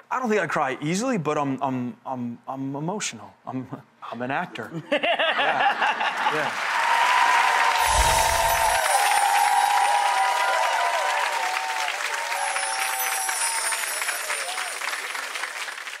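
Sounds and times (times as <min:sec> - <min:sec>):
audience applause and cheering: 0:06.1 - 0:16.0
outro music: 0:07.8 - 0:09.9.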